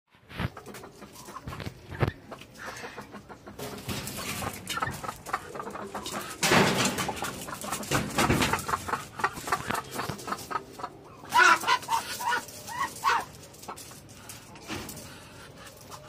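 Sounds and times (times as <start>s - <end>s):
chickens clucking: 0.2s - 16.0s.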